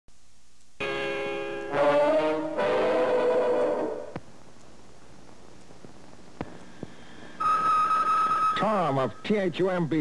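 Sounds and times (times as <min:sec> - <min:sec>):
held brass chords: 0:01.6 - 0:04.1.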